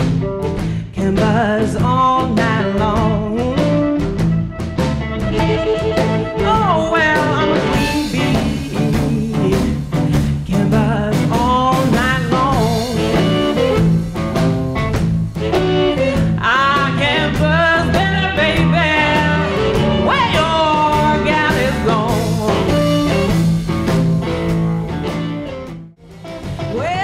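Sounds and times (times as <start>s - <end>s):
blues band playing live: 0.0s - 27.0s
electric guitar lead bending: 0.0s - 27.0s.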